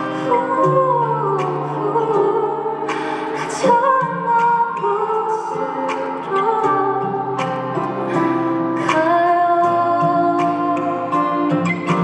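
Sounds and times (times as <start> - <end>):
guitar accompaniment: 0.0 - 12.0.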